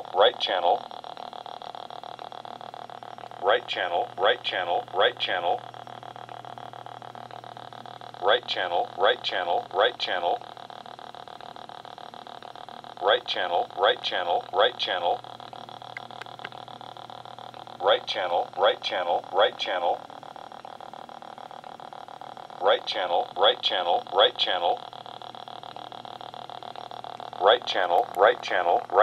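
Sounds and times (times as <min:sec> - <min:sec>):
speaker hum and whine: 0:00.0 - 0:29.0.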